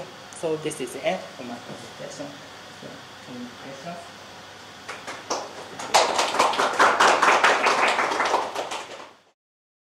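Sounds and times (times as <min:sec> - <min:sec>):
small audience applauding: 0:04.8 - 0:09.3.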